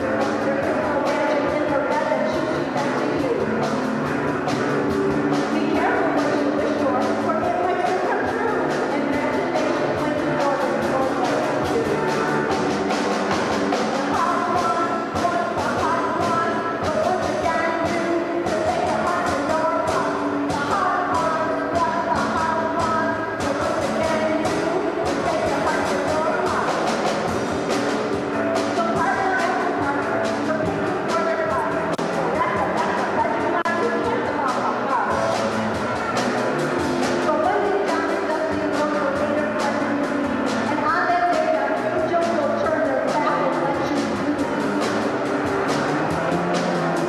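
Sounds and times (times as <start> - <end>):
drum kit with cymbals: 0.0 - 47.0.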